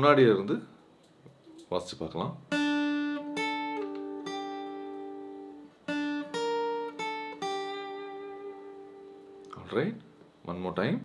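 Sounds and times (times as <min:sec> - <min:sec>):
acoustic guitar plucked notes: 0:02.5 - 0:10.2.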